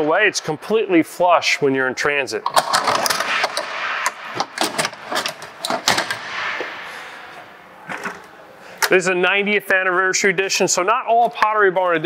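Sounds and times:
metal step clacking and rattling: 4.1s - 6.2s.

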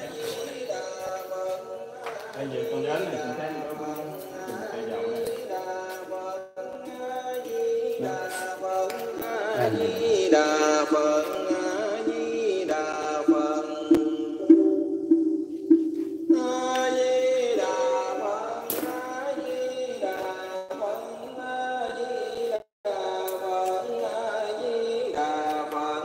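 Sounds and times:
chanted melody: 0.0s - 22.1s.

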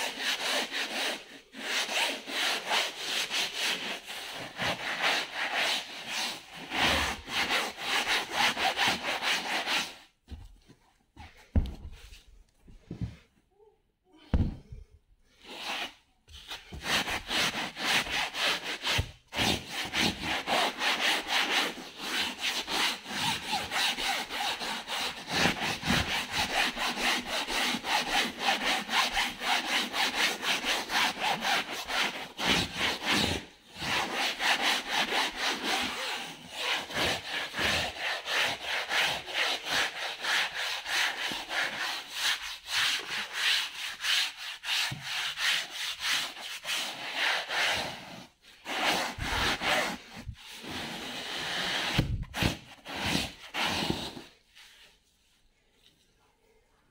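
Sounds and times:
brush scrubbing fabric: 0.0s - 10.2s, 15.5s - 54.9s.

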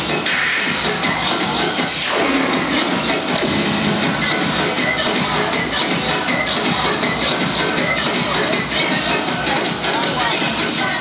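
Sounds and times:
loud electronic dance music: 0.0s - 11.0s.

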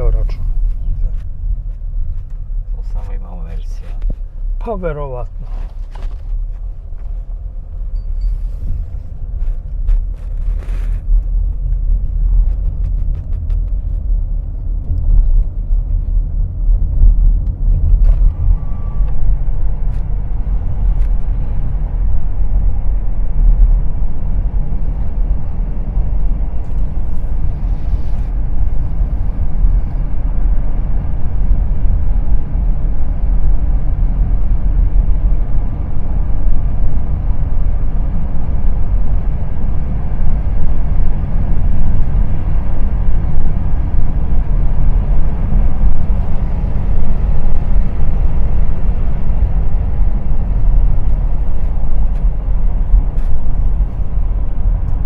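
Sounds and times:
car driving on paved road: 0.0s - 55.0s.

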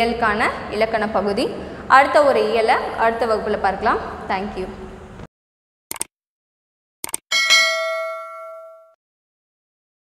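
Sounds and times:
bright bell ding: 7.3s - 9.0s.

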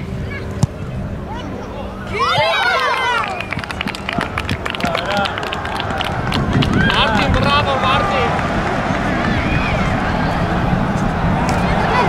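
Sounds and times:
young players shouting: 2.1s - 3.5s, 4.8s - 12.0s.

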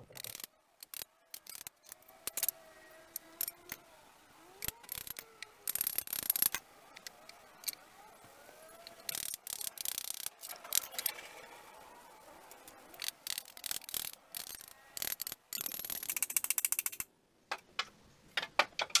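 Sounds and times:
wooden sticks knocking and clicking: 13.0s - 19.0s.

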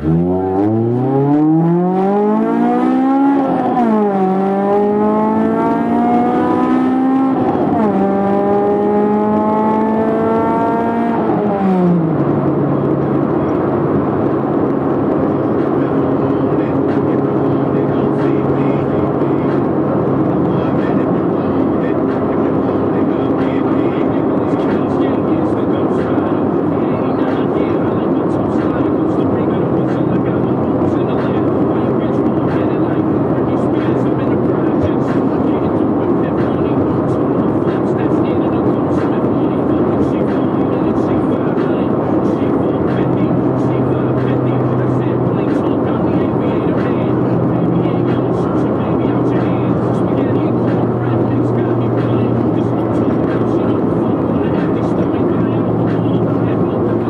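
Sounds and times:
car engine drone: 0.0s - 57.0s.

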